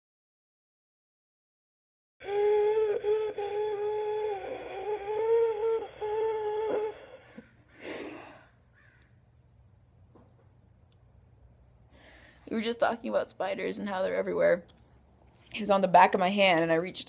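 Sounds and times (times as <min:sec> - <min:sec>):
high voice humming: 0:02.2 - 0:08.3
breathy exhale: 0:02.2 - 0:08.6, 0:11.9 - 0:12.4.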